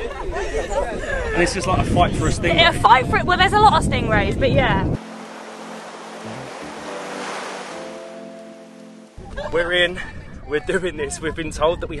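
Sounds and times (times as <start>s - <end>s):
sea waves rushing: 5.0s - 9.4s
soft sustained music: 5.0s - 9.6s.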